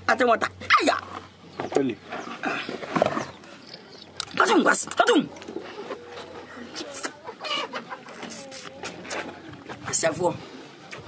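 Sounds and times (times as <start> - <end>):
chicken clucking: 2.2 - 11.0.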